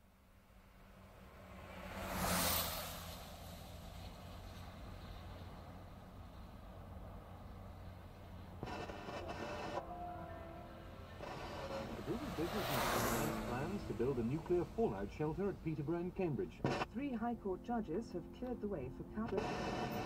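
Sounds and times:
car engine humming: 0.7s - 20.0s
radio static burst: 8.6s - 9.8s, 11.1s - 20.0s.

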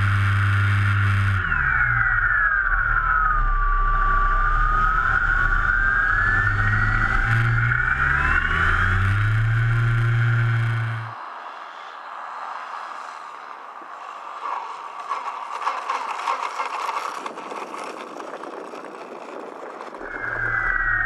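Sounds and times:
model plane motor whine: 0.0s - 11.2s, 15.0s - 21.0s
steady low hum: 0.0s - 11.2s.

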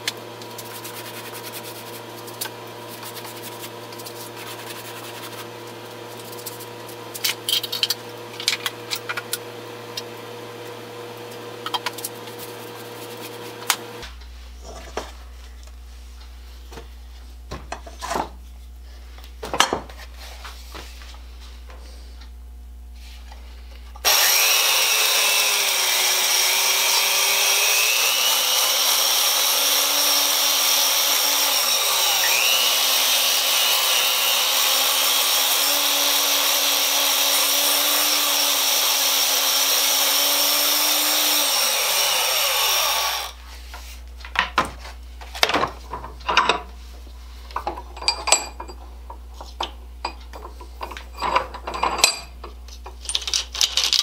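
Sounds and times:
power file grinding metal: 24.0s - 43.4s.

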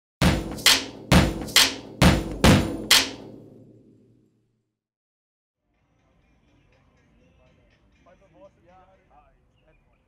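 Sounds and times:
sharp percussive hits ringing: 0.2s - 3.8s.

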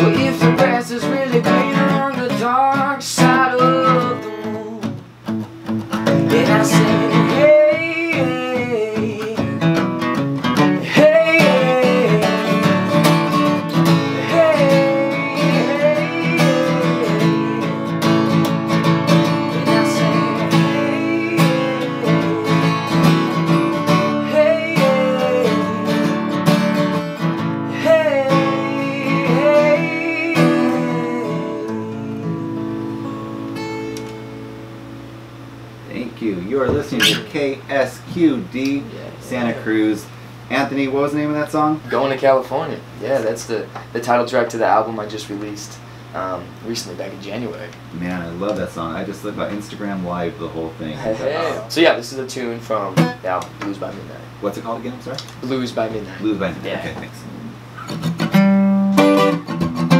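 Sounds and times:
man singing: 0.0s - 5.0s, 6.1s - 9.8s, 10.6s - 18.4s, 19.1s - 26.4s, 27.7s - 32.8s
strummed acoustic guitar: 0.0s - 38.4s, 52.4s - 53.9s, 57.0s - 59.9s.

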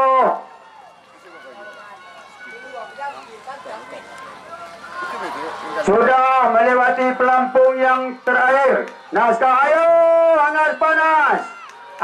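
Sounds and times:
man shouting: 5.8s - 11.6s.

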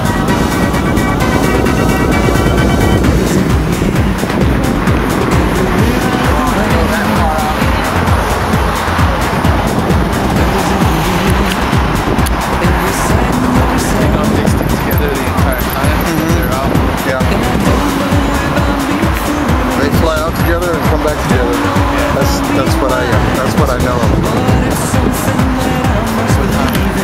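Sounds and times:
cars passing: 0.0s - 27.0s
music: 0.0s - 27.0s.

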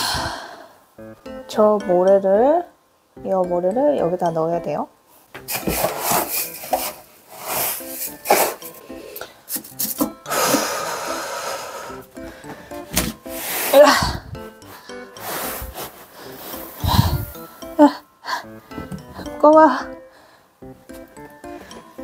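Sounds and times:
light background music: 0.0s - 22.0s
cat litter scraping: 5.5s - 8.8s.

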